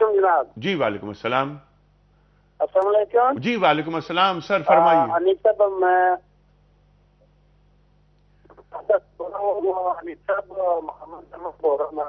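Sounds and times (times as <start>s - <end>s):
steady low hum: 0.0s - 12.0s
caller's voice over telephone: 4.7s - 6.2s, 8.5s - 12.0s.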